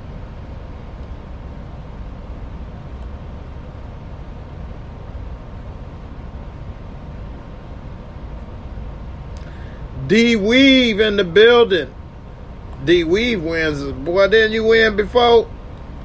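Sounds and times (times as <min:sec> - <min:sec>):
low rumbling background noise: 0:00.0 - 0:16.0.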